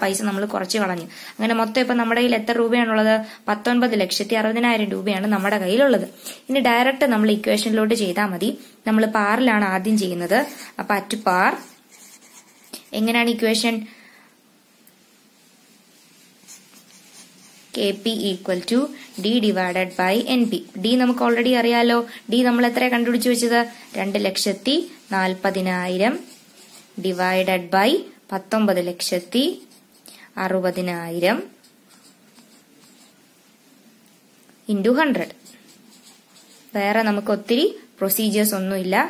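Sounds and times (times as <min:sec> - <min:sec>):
pen scratching on paper: 0:11.4 - 0:12.9, 0:16.5 - 0:21.5, 0:25.4 - 0:27.4, 0:31.5 - 0:33.2, 0:35.1 - 0:37.1.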